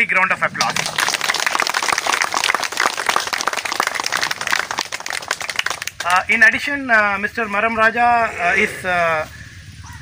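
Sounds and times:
crowd applauding: 0.6 - 6.2.

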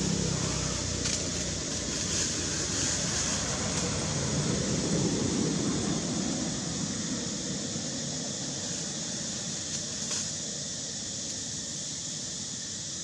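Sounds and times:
hiss: 0.0 - 13.0.

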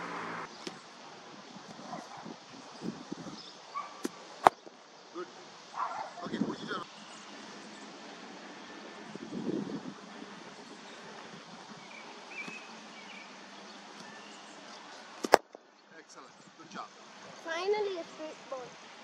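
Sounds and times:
steady background hiss: 0.0 - 19.0
cricket bat striking ball: 4.0 - 4.7, 15.2 - 15.6.

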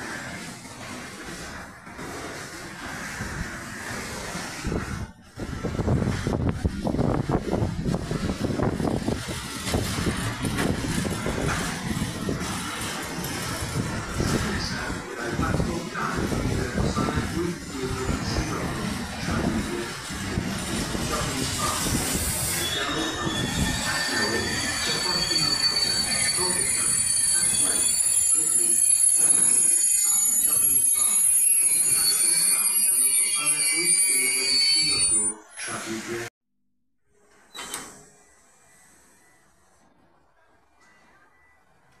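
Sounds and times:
train wheels rumbling on rail: 0.0 - 32.4
wheels and couplings clattering: 8.2 - 15.0.

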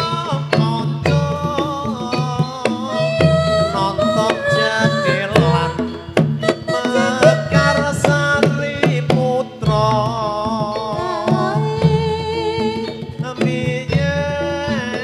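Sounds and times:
hand drum strokes: 0.0 - 15.0
wavering high melody: 0.0 - 15.0.

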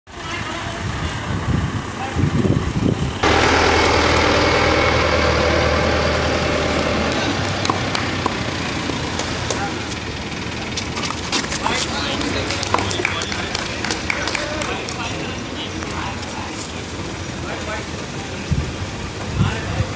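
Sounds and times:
outdoor voices: 0.1 - 19.9
vehicle engine humming: 0.1 - 19.9.

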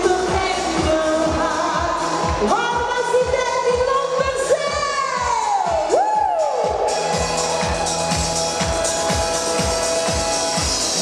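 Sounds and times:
woman singing: 0.0 - 5.9
pop backing track with kick drum: 0.0 - 11.0.

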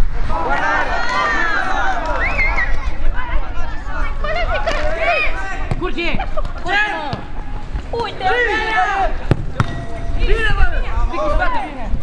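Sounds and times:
players shouting: 0.2 - 11.9
football being kicked: 5.6 - 6.2, 7.0 - 7.8, 9.2 - 10.0.

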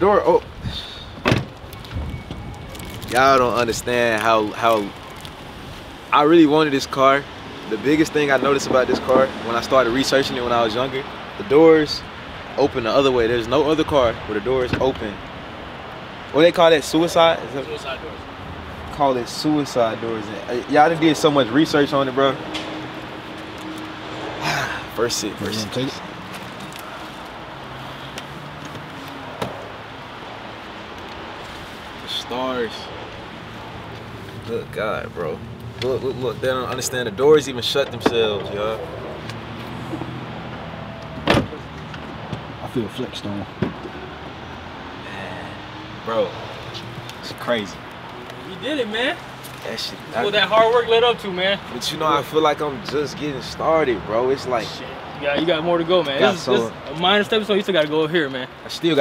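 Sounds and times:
car door shutting: 1.1 - 2.4, 41.2 - 41.6.

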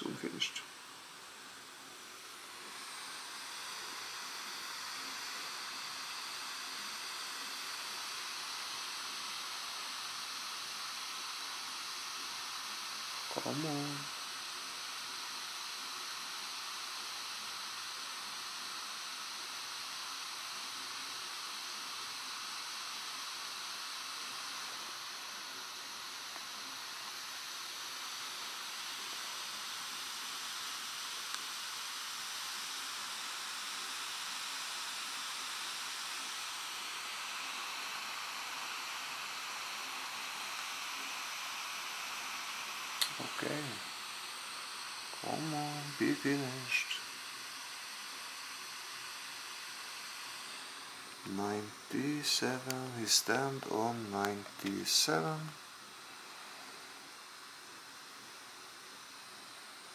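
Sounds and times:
steady hiss: 0.0 - 59.9.

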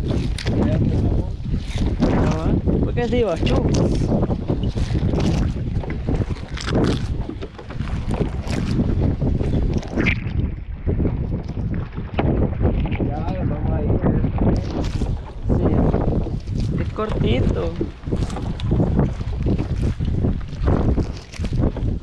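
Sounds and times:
splashes of water: 0.0 - 10.7, 14.5 - 22.0
wind buffeting microphone: 0.0 - 22.0.

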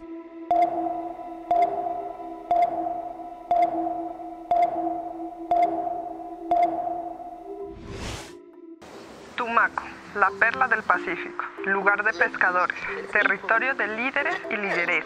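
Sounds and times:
electronic sonar-like pings: 0.5 - 7.8
whoosh: 7.7 - 8.4.

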